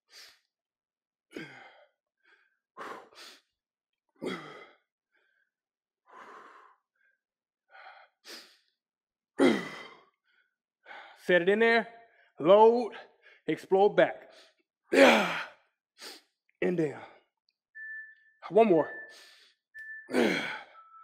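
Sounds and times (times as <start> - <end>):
man breathing hard: 1.3 - 3.5, 4.2 - 5.4, 6.1 - 7.1, 7.7 - 8.7, 9.4 - 11.2.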